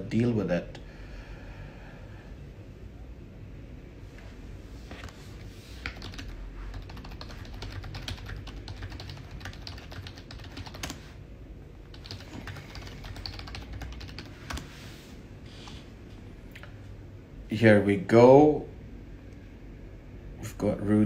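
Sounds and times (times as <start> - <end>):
typing on computer keyboard: 5.8 - 11.0, 11.8 - 14.7.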